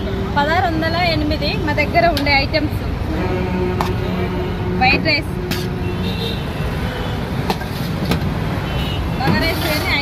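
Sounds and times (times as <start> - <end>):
roadside traffic noise: 0.0 - 10.0.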